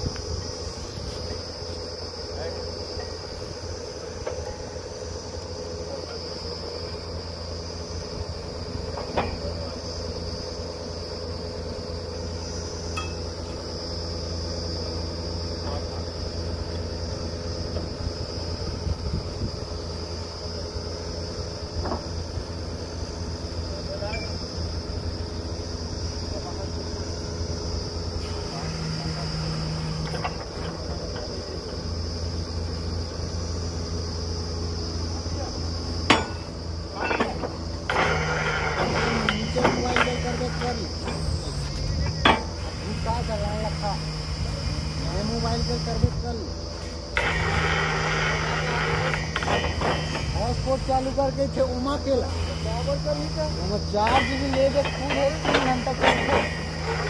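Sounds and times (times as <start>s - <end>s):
drilling rig engine hum: 0.0s - 57.0s
high shrill whine: 0.0s - 57.0s
metal knocks and clanks: 36.1s - 38.1s, 38.8s - 41.3s, 49.1s - 50.4s, 54.0s - 57.0s.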